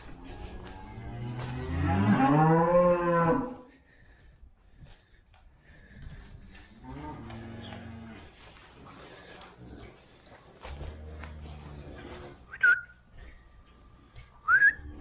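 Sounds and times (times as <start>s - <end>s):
cattle lowing: 0.0s - 15.0s
short sharp whistles: 12.5s - 13.0s, 14.4s - 14.8s.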